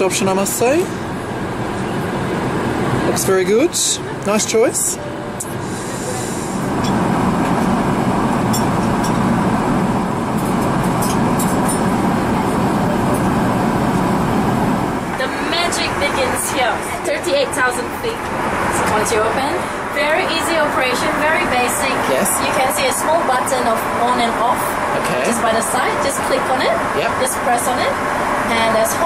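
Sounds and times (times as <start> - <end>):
airliner cabin noise: 0.0 - 29.0.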